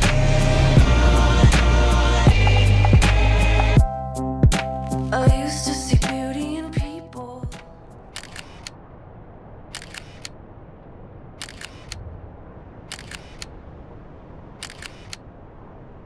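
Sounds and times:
low steady rumble: 0.0s - 16.0s
sharp mechanical clicks: 8.2s - 8.8s, 9.7s - 10.4s, 11.4s - 12.0s, 12.9s - 13.5s, 14.6s - 15.2s.

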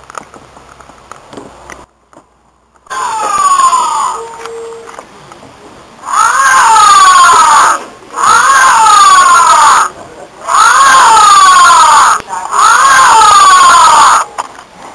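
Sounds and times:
toy electronic scream: 2.9s - 4.9s, 6.0s - 14.3s.

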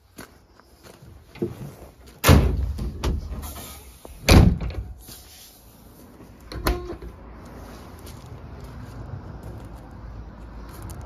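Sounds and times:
truck bed lid slamming: 2.2s - 3.6s, 4.2s - 4.9s.

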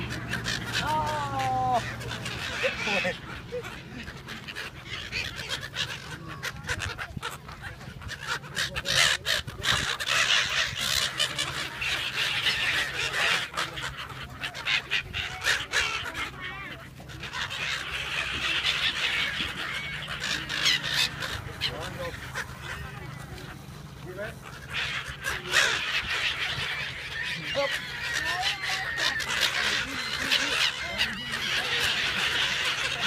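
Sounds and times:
gulls squawking: 0.0s - 33.0s
people chattering: 0.0s - 33.0s.

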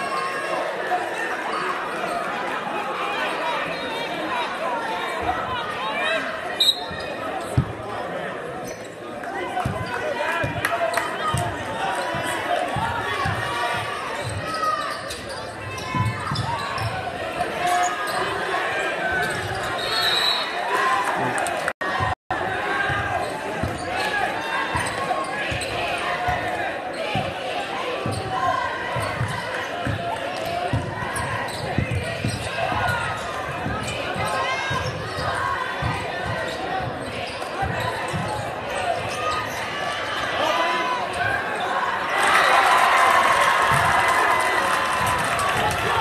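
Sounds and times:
crowd murmur: 0.0s - 46.0s.

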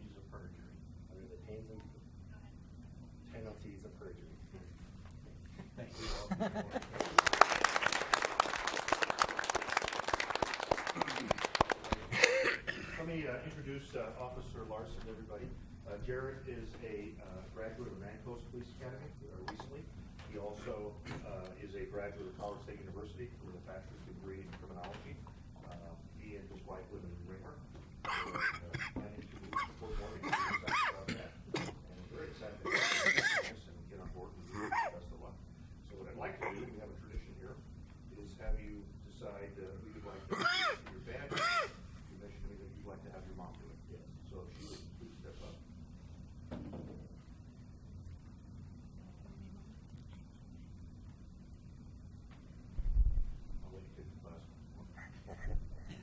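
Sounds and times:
audience applauding: 6.7s - 12.4s.

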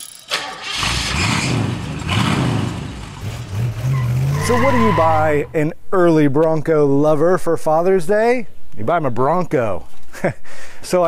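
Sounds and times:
car engine starting and revving: 0.3s - 5.6s.

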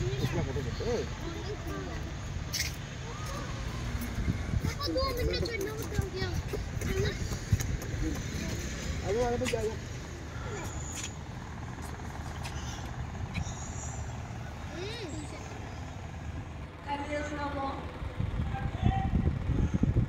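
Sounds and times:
vehicle rumble from inside: 0.0s - 20.0s
people talking: 4.6s - 7.4s, 14.7s - 15.6s, 16.9s - 17.9s.

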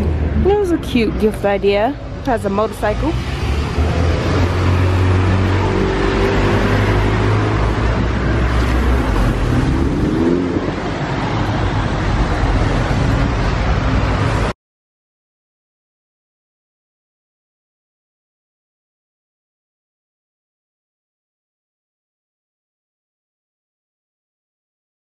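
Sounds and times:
road noise: 0.0s - 14.6s.

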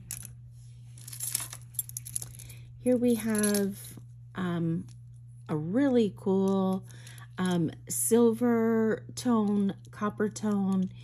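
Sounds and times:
metal chain bracelet jingling: 1.0s - 3.8s.

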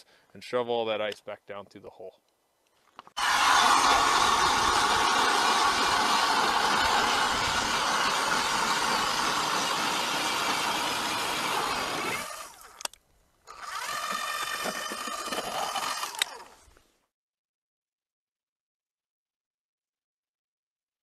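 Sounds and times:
ice auger drilling through ice: 3.2s - 16.8s.

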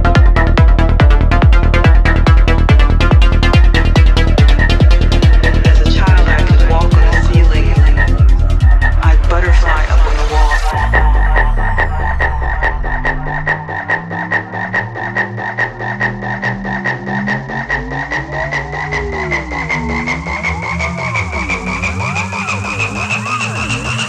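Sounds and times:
high synth tone rising: 0.0s - 18.1s
deep kick and bass: 0.0s - 24.0s
low synth sweeps: 0.0s - 24.0s.

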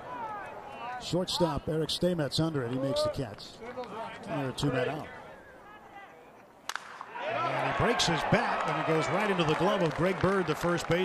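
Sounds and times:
wooden bat cracking on ball: 6.6s - 7.1s
man commentating: 7.3s - 11.0s.

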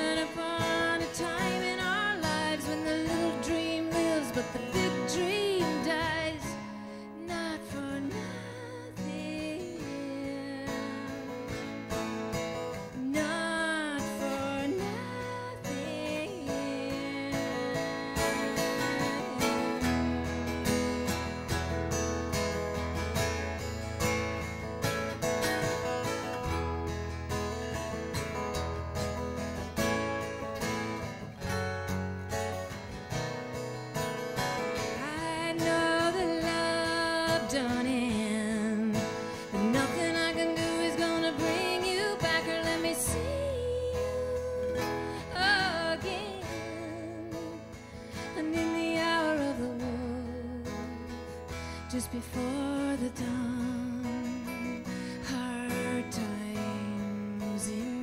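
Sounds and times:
acoustic guitars playing: 0.0s - 58.0s.

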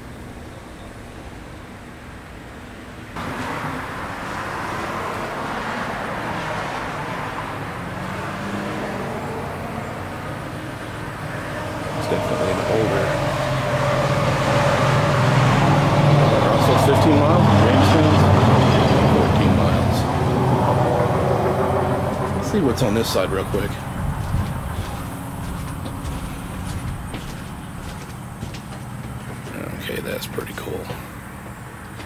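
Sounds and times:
road traffic noise: 0.0s - 32.0s
vehicle engine hum: 0.0s - 32.0s.

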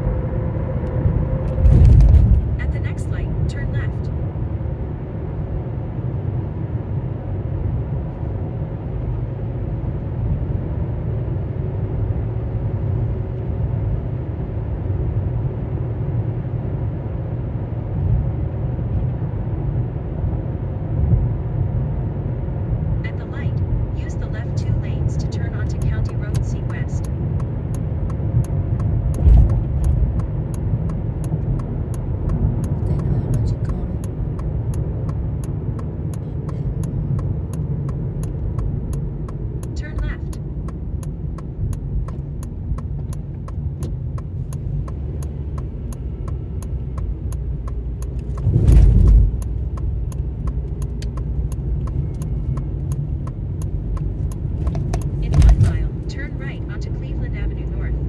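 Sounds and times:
car road and engine rumble: 0.0s - 58.0s
faint regular ticking: 23.3s - 57.5s.

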